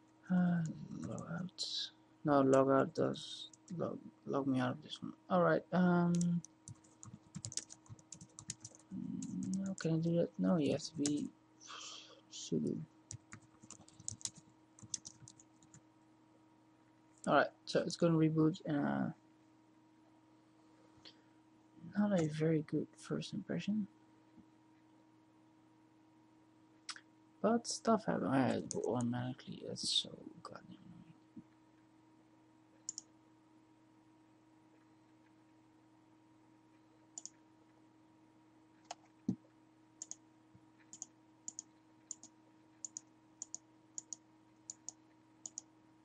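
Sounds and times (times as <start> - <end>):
faint electrical hum: 0.0 - 46.0
keyboard keystroke clicks: 13.1 - 15.4.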